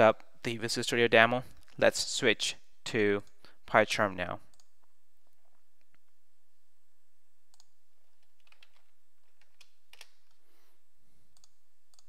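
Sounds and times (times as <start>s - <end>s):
computer mouse clicks: 4.5s - 4.7s, 7.5s - 10.4s, 11.3s - 12.0s.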